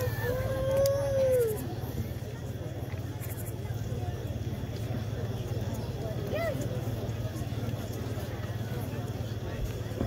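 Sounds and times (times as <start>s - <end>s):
low background murmur and hum: 0.0s - 10.0s.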